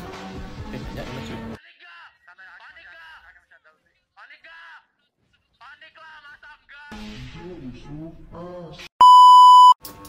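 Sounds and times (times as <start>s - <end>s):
electronic censor beep: 9.0s - 9.8s.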